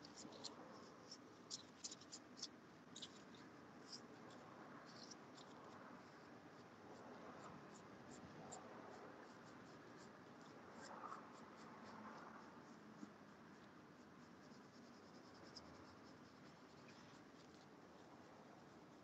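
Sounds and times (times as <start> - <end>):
low room hiss: 0.0 - 19.0
paintbrush ticking and scratching: 0.0 - 19.0.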